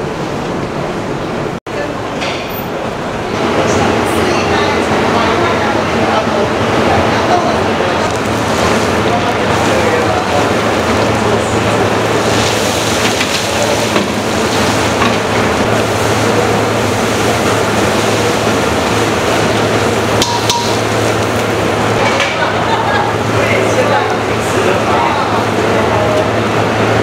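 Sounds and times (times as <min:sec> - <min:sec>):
stir-fry kettle motor humming: 0:03.4 - 0:27.0.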